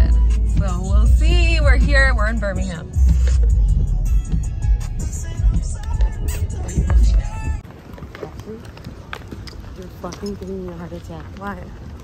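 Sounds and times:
footsteps on pavement: 0:00.9 - 0:12.0.

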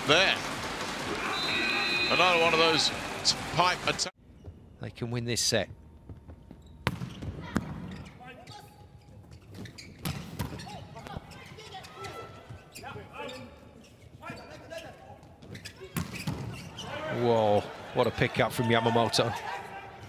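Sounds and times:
players shouting: 0:01.0 - 0:04.0, 0:16.8 - 0:20.0
volleyball slaps echoing: 0:06.8 - 0:07.9.

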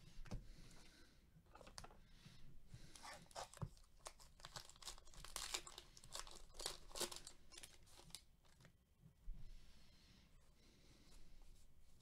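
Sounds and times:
foil wrapper tearing and crinkling: 0:03.2 - 0:08.6.

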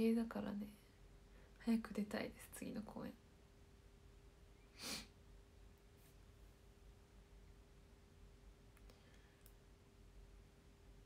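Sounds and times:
faint clicks: 0:08.7 - 0:09.6.

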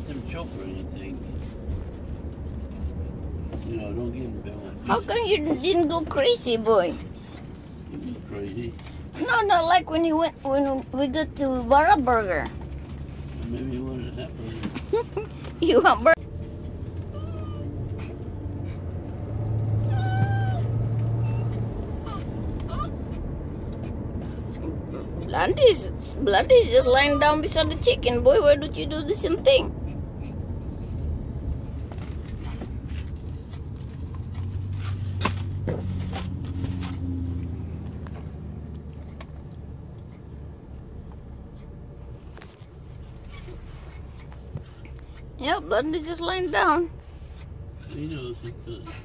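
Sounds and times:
vehicle engine rumble inside cabin: 0:00.0 - 0:49.0
small dog whimpering: 0:17.0 - 0:18.3, 0:19.7 - 0:23.2.

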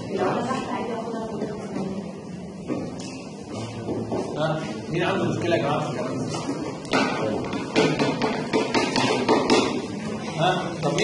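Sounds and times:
rapid sharp taps: 0:06.7 - 0:09.9.

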